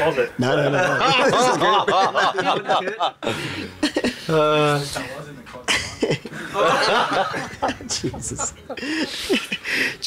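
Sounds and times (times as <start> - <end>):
people laughing together: 0.4 - 4.3, 5.7 - 10.0
people chattering: 6.3 - 10.0.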